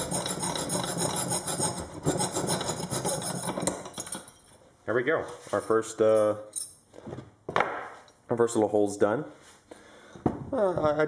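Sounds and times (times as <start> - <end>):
hand saw rasping strokes: 0.0 - 3.8.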